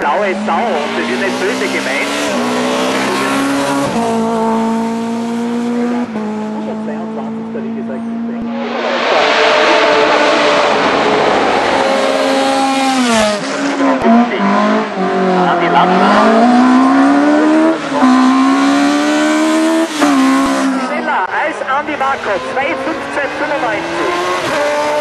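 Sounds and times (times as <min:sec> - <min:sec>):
racing car engines revving: 0:00.0 - 0:25.0.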